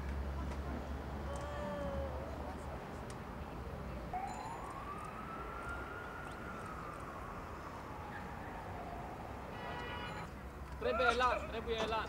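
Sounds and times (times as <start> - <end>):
siren wailing: 4.1 - 9.6.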